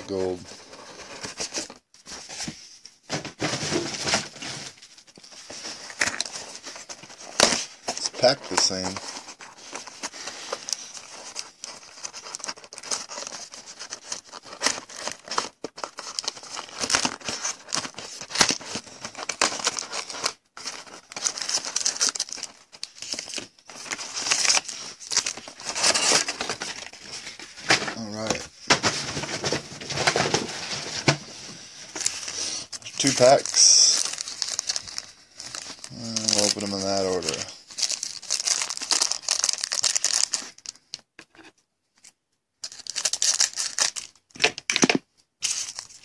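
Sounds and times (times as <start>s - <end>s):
cardboard and foil packaging rustling: 0.0s - 40.9s, 42.6s - 46.0s.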